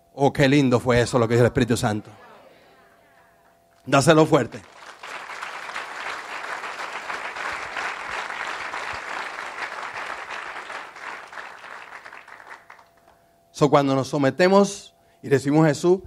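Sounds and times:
congregation applauding: 1.8s - 13.2s.

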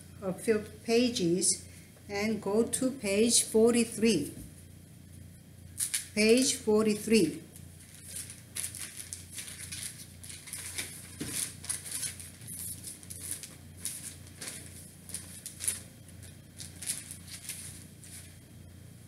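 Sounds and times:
paper pages turning: 7.8s - 18.4s.

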